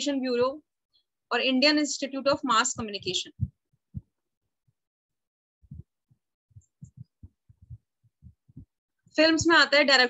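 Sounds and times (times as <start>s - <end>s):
soft low thumps: 2.2s - 4.8s, 5.6s - 9.6s.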